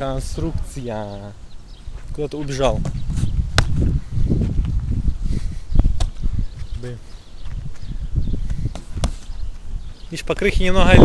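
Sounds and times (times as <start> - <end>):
sharp slaps: 3.5 - 3.8.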